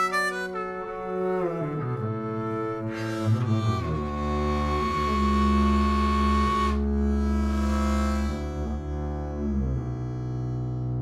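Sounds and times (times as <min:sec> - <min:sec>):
harmonica long held note: 0:00.0 - 0:01.4, 0:02.8 - 0:10.8
bowed upright bass: 0:00.0 - 0:11.0.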